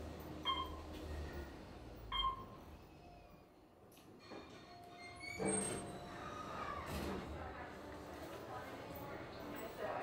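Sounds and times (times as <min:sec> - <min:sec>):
elevator chime ding: 0:00.4 - 0:00.8.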